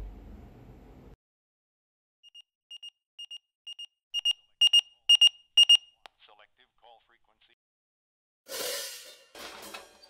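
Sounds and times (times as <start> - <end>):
electronic alarm beeping: 2.2 - 6.0.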